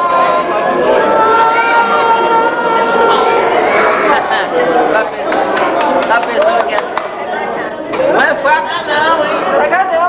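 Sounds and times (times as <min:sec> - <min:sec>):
background voices chattering: 0:00.0 - 0:10.0
people talking close by: 0:00.0 - 0:10.0.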